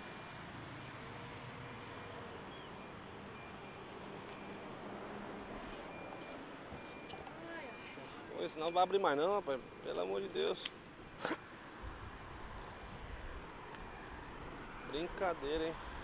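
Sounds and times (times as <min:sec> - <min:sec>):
car driving in traffic: 0:00.0 - 0:16.0.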